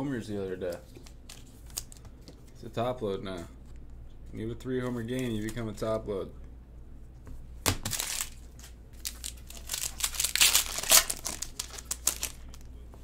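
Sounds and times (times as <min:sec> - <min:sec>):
foil wrapper crinkling and tearing: 0:07.8 - 0:12.7.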